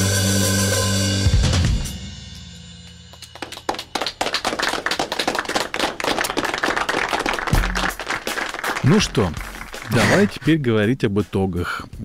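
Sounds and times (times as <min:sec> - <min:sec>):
people clapping: 0:03.1 - 0:10.6.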